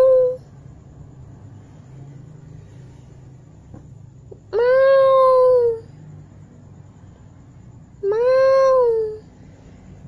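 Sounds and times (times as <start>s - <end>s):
cat yowling: 0.0s - 0.5s, 4.5s - 5.9s, 8.0s - 9.3s.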